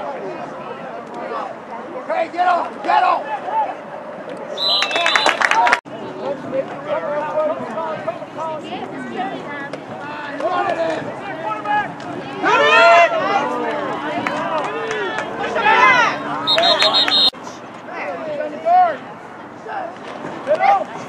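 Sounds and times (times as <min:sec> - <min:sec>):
crowd shouting and talking: 0:00.0 - 0:21.0.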